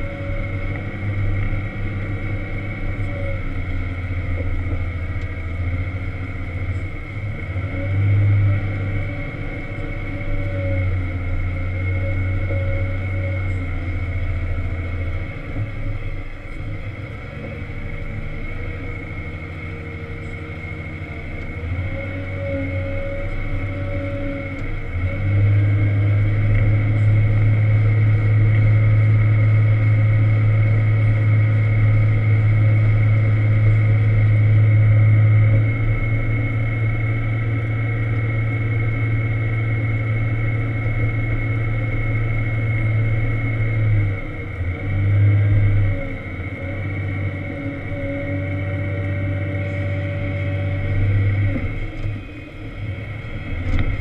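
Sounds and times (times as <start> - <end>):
diesel engine droning under load: 0.0 - 54.0
steady high whine: 0.0 - 54.0.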